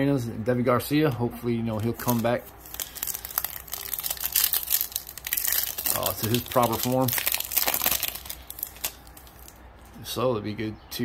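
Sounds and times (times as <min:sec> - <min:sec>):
foil wrapper tearing and crinkling: 0:01.7 - 0:09.6.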